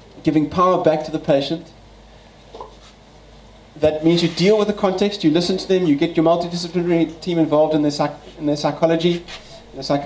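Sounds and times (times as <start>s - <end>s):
low room hum: 0.0s - 10.0s
man speaking: 3.8s - 10.0s.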